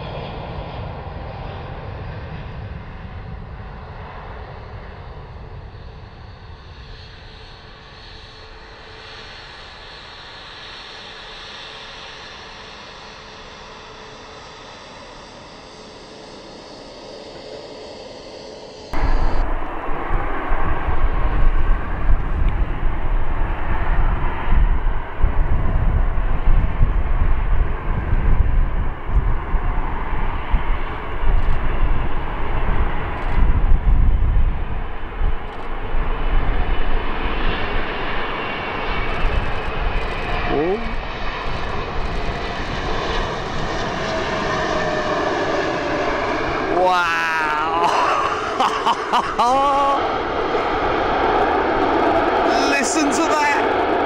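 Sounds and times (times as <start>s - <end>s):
jet engines roaring: 0.0s - 54.0s.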